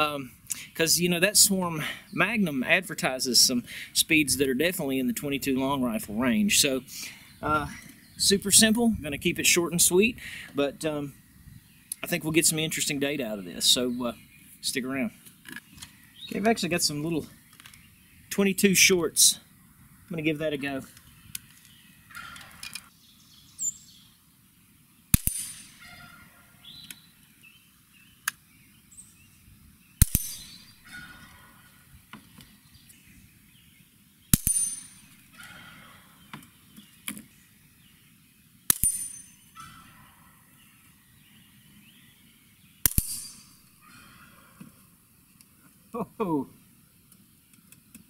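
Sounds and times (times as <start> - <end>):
rifle shots: 25.1 - 25.8, 30.0 - 30.8, 34.3 - 35.1, 42.8 - 43.5.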